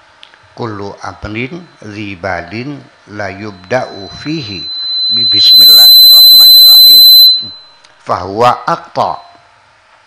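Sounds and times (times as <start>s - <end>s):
man talking: 0.6s - 5.5s, 8.1s - 9.3s
microphone feedback tone: 1.4s - 7.8s.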